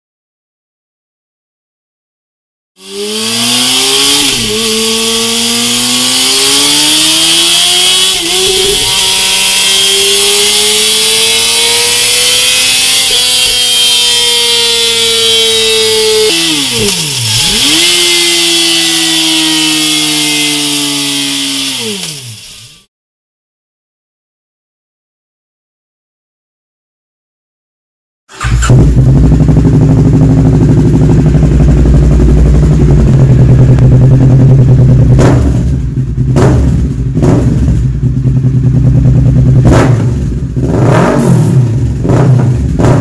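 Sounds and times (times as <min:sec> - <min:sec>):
motorcycle engine revving high: 0:02.8 - 0:22.9, 0:28.3 - 0:43.0.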